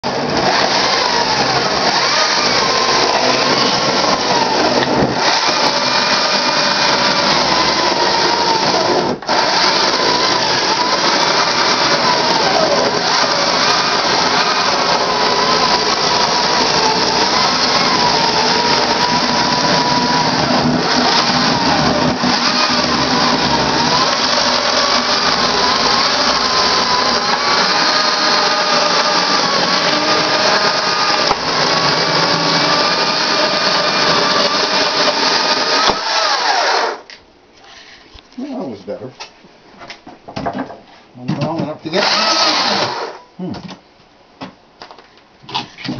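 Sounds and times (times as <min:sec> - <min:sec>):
chainsaw cutting logs: 0:00.0 - 0:37.1, 0:41.9 - 0:43.2.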